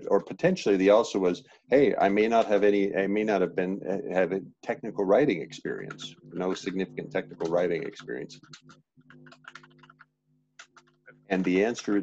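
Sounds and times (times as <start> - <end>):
faint steady hum: 0.0 - 12.0
keyboard typing: 5.8 - 12.0.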